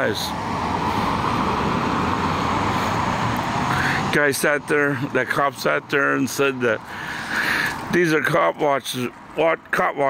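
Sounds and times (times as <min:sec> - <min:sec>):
car tyre and engine noise: 0:00.0 - 0:10.0.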